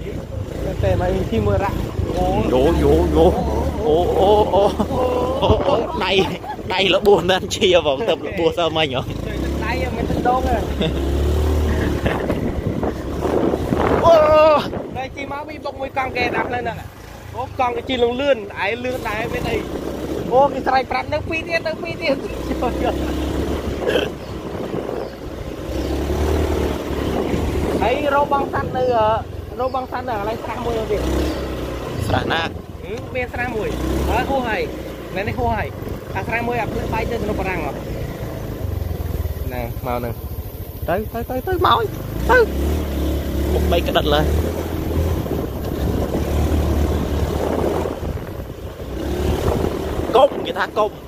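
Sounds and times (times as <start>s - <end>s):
motorcycle engine rumbling: 0.0s - 51.0s.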